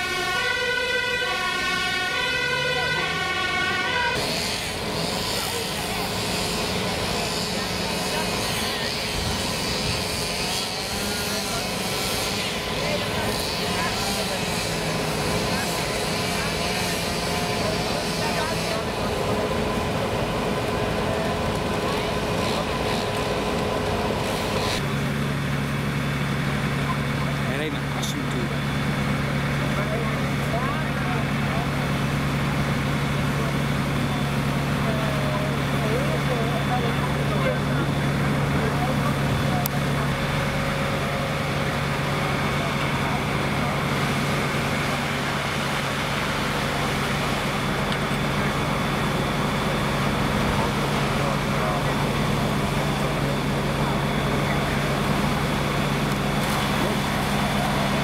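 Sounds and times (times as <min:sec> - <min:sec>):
deep fire engine hum: 0:00.0 - 0:58.0
vehicle engine noise: 0:00.0 - 0:58.0.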